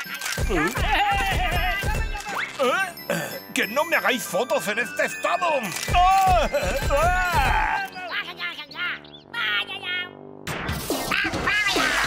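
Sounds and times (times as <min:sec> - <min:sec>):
cartoon quack-like squawks: 0:11.0 - 0:12.0.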